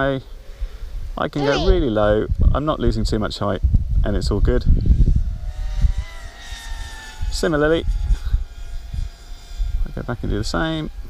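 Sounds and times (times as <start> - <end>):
quadcopter motors whining: 1.4 - 2.0, 4.6 - 11.0.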